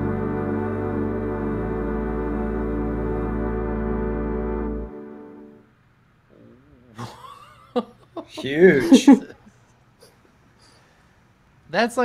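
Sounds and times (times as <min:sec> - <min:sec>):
person humming softly: 0:06.3 - 0:07.0.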